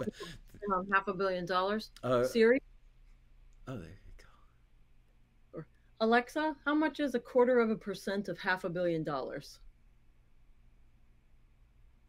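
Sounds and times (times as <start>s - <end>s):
faint whispering voice: 0.0s - 0.4s
low steady hum: 0.0s - 12.0s.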